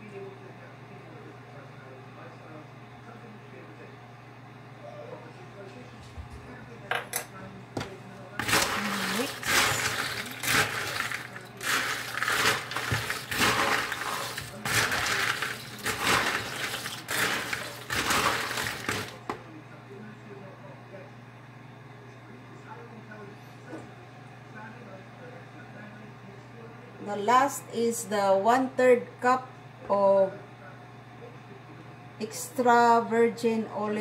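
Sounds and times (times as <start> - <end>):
snack mix rattling under spatula: 8.4 - 19.3.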